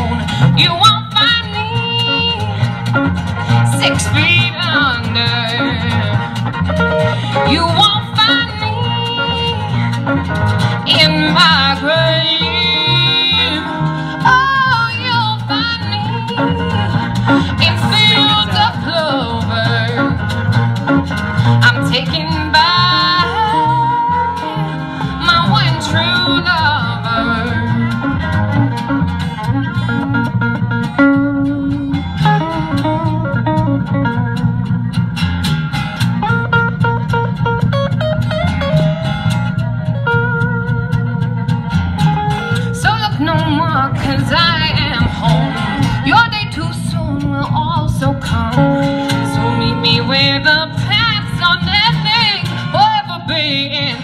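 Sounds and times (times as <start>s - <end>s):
acoustic guitar: 0.0s - 54.0s
bass line: 0.0s - 54.0s
electric guitar: 0.0s - 54.0s
fiddle: 0.0s - 54.0s.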